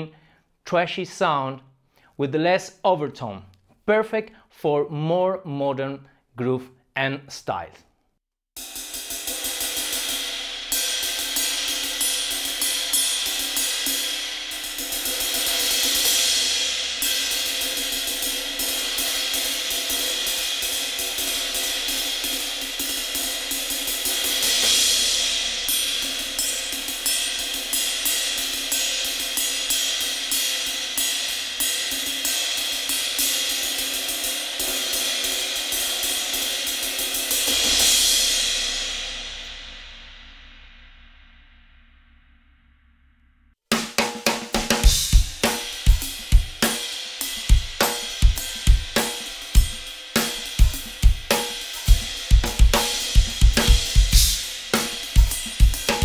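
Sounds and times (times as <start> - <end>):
ride cymbal pattern: 8.6 - 40.8, 44.8 - 56.0
cymbal crash accents: 8.6 - 43.4, 44.8 - 56.0.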